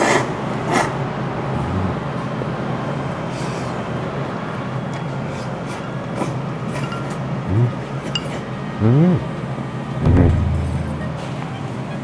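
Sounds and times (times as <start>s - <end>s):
restaurant background hum: 0.0s - 12.0s.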